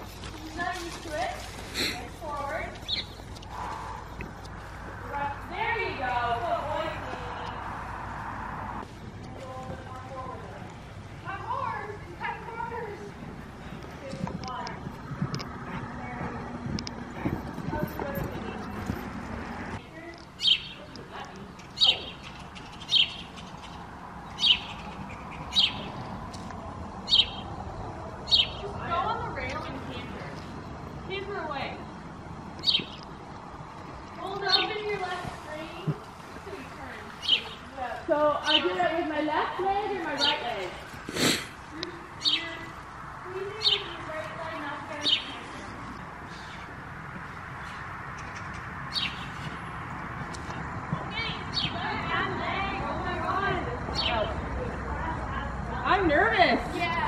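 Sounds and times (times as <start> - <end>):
bird chirping: 2.7 - 4.7, 20.4 - 26.2, 27.0 - 27.6, 28.2 - 28.7, 32.6 - 33.2, 37.1 - 38.8, 42.2 - 42.7, 43.6 - 44.1, 44.9 - 49.6, 51.1 - 52.0
small bird chirping: 21.6 - 26.1.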